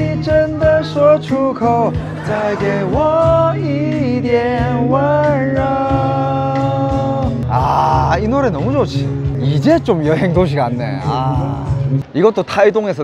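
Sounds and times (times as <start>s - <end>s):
person singing: 0.0s - 8.2s.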